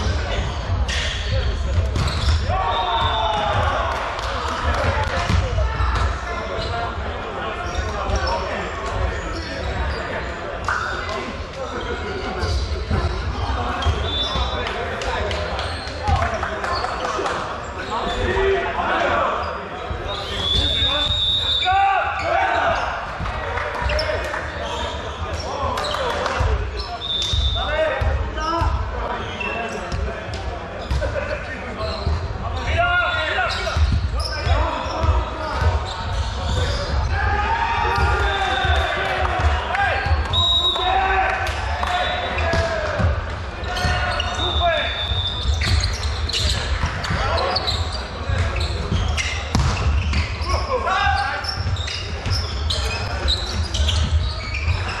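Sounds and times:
players calling to each other: 0.1s - 3.9s, 4.8s - 14.8s, 17.8s - 23.1s, 23.8s - 30.0s, 30.8s - 55.0s
ball bouncing on wooden floor: 49.5s - 50.2s.

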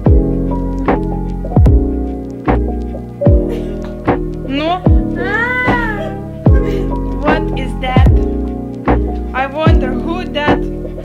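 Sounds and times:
background music with beat: 0.0s - 11.0s.

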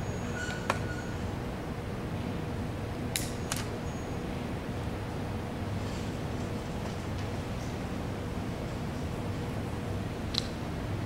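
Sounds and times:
low room noise: 0.0s - 11.0s.

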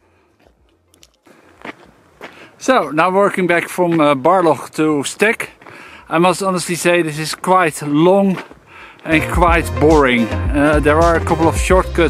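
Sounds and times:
footsteps on gravel: 0.1s - 11.3s.

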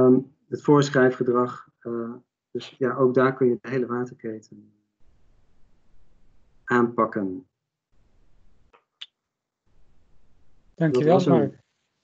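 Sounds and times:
faint background hiss: 5.8s - 7.4s, 10.8s - 11.6s.

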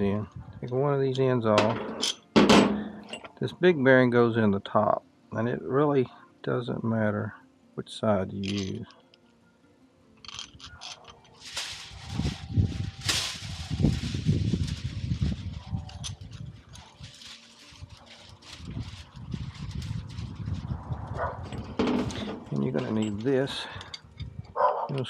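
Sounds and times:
metal parts clicking on rod: 8.4s - 9.0s, 10.2s - 11.4s
rustling handling noise: 8.4s - 9.3s, 10.2s - 24.3s.

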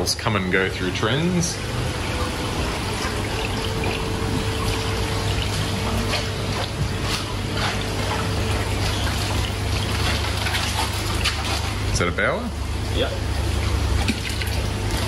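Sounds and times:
continuous low hum: 0.0s - 15.0s
water trickling and splashing: 0.0s - 15.0s.

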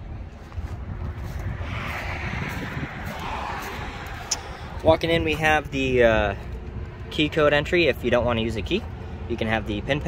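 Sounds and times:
road traffic rumble: 0.0s - 10.0s
passing vehicle hiss: 1.4s - 5.0s.

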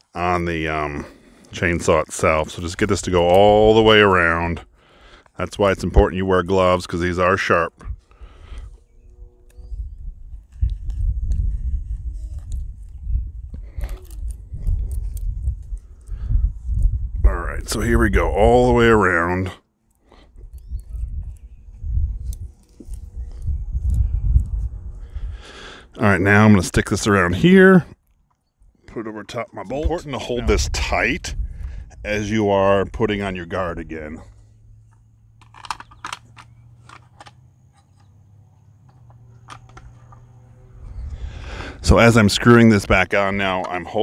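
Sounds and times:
low rumble on microphone: 7.7s - 19.0s, 20.1s - 28.0s, 29.7s - 35.5s, 38.6s - 43.0s.

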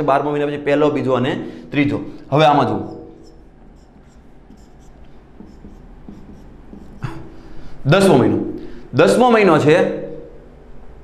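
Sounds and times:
marker pen writing on whiteboard: 2.4s - 7.5s.

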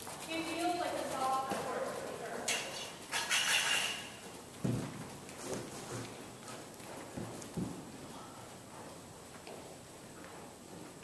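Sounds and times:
horse hoofbeats on soft dirt: 0.0s - 11.0s.

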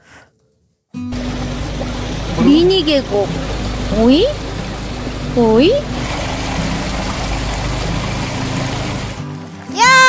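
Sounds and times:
stream running over rocks: 1.1s - 10.0s.

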